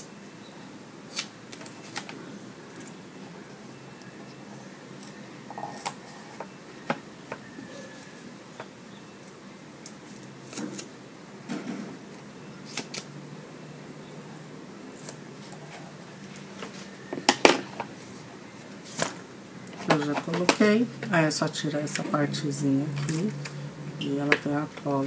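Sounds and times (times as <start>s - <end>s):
woman speaking: 19.8s - 23.4s, 24.0s - 25.0s.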